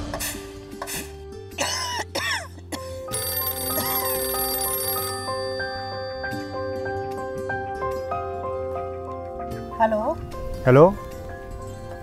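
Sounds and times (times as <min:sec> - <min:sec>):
background music: 0:00.0 - 0:12.0
mobile phone ringing: 0:03.1 - 0:07.6.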